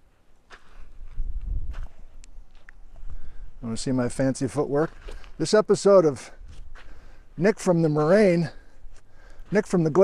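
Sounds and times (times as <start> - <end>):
footsteps on loose pebbles: 4.7 - 5.6, 6.3 - 10.0.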